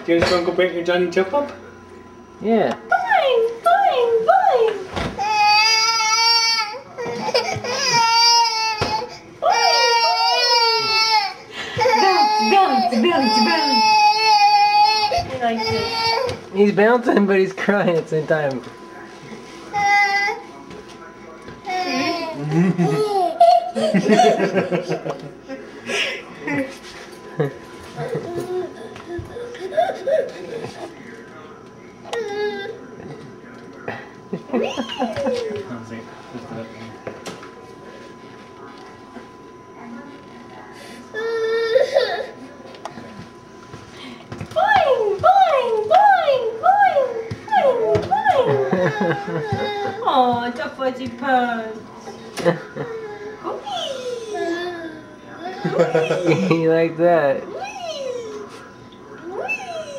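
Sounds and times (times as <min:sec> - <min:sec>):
baby crying in high wails: 0:05.2 - 0:16.4.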